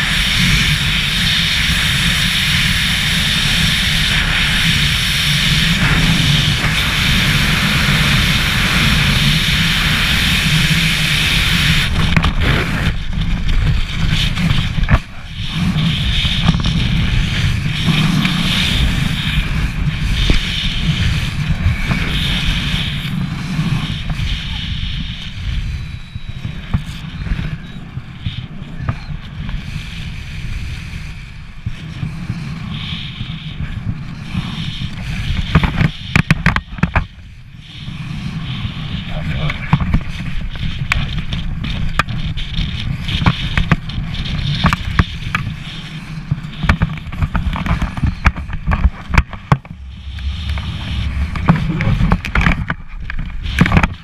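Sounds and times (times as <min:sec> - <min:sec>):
wind roaring over microphone: 0:00.0 - 0:54.0.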